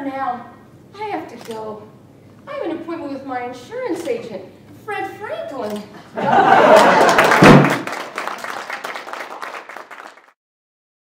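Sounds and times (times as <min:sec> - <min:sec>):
audience applauding: 0:06.3 - 0:10.4.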